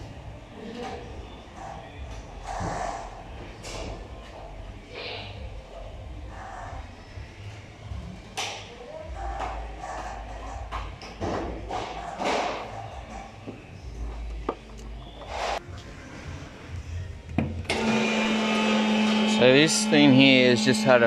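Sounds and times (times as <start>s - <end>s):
indistinct voices in echoing room: 0.0s - 21.0s.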